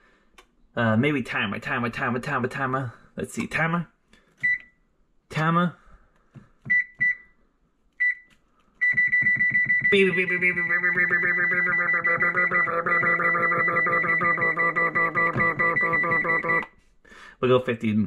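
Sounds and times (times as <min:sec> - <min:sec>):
short high beeps: 0:08.8 - 0:16.7
steady high tone: 0:09.1 - 0:16.7.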